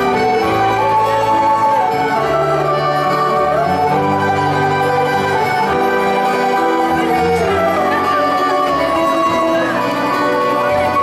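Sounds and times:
accordion: 0:00.0 - 0:11.0
bouzouki plucked: 0:00.0 - 0:11.0
live band playing instrumental: 0:00.0 - 0:11.0.

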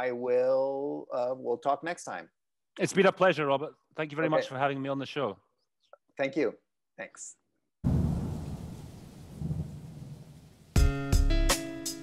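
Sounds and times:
thunder-like low rumble: 0:07.8 - 0:10.6.

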